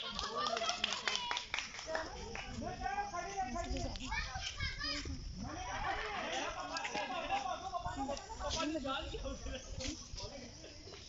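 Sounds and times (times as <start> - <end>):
children calling out: 0.0 - 3.1, 3.9 - 8.7.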